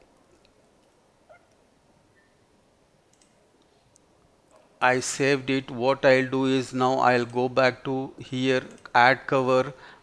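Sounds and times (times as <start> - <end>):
low background hiss: 0.0 - 10.0
keyboard and mouse clicks: 3.1 - 4.6.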